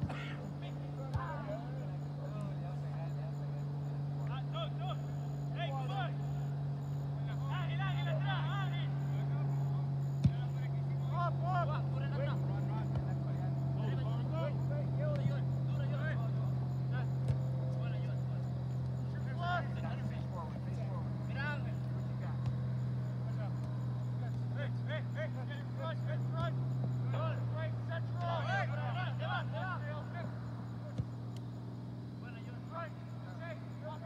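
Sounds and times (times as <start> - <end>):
distant players shouting: 0.0 - 34.0
steady low hum: 0.0 - 34.0.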